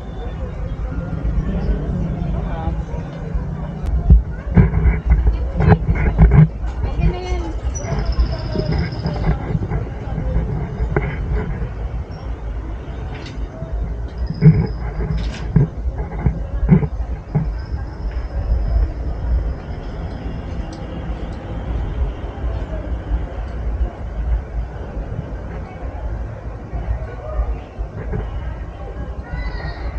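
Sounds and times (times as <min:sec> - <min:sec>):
passers-by talking: 0:00.0 - 0:29.9
steady low rumble: 0:00.0 - 0:29.9
knocks and clicks: 0:03.8 - 0:07.2.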